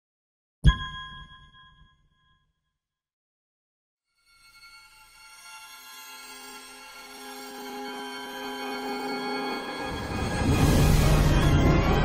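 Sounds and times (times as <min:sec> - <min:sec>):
bright logo chime ding: 0:00.7 - 0:02.3.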